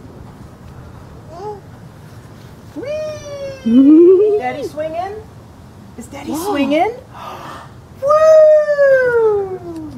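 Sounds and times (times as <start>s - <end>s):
person crying out: 2.8s - 4.1s.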